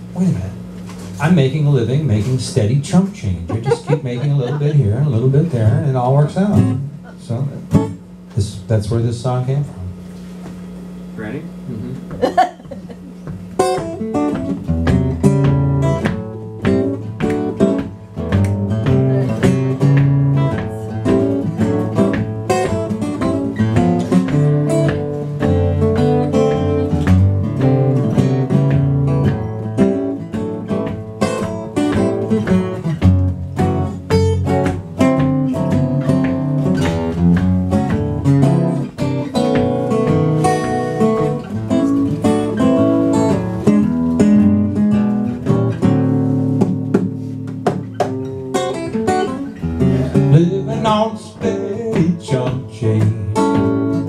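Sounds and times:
acoustic guitars playing: 0:00.0 - 0:54.0.

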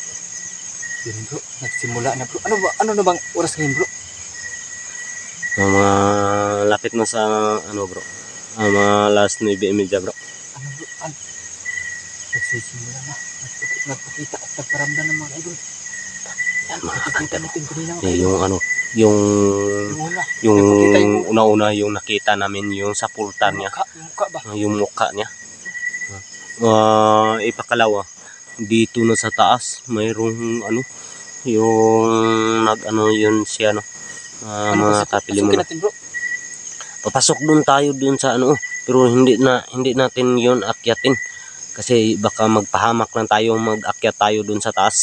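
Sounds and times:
crickets chirring: 0:00.0 - 0:45.0
man saying uhhh: 0:05.6 - 0:07.9, 0:18.0 - 0:21.6, 0:26.1 - 0:27.6, 0:34.4 - 0:35.6
man humming: 0:05.6 - 0:08.0, 0:18.0 - 0:21.6, 0:26.1 - 0:27.6, 0:34.4 - 0:35.7.

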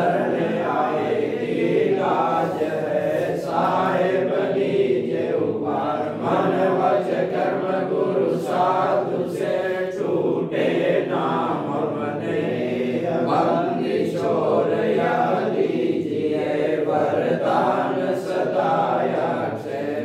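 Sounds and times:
group chanting a hymn in unison: 0:00.0 - 0:20.0.

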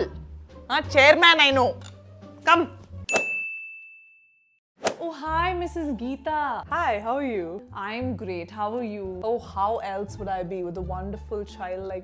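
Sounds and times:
bright bell ding: 0:03.1 - 0:04.4.

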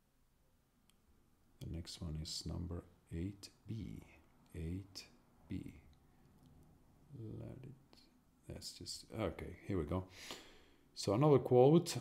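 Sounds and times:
man's voice: 0:01.6 - 0:06.0, 0:07.1 - 0:10.1, 0:11.0 - 0:12.0.

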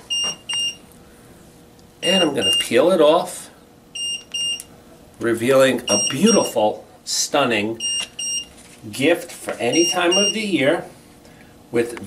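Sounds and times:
short high alarm beeps: 0:00.0 - 0:00.8, 0:02.0 - 0:02.8, 0:04.0 - 0:04.7, 0:05.9 - 0:06.5, 0:07.8 - 0:08.5, 0:09.7 - 0:10.4
faint hum: 0:00.0 - 0:12.0.

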